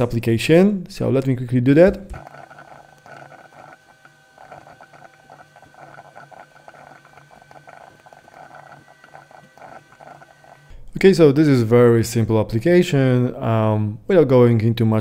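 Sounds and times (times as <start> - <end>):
faint steady hum: 0.0 - 11.9.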